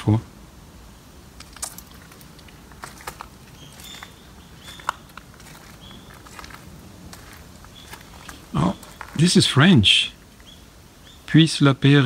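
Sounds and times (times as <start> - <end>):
footsteps on gravel: 1.4 - 9.4.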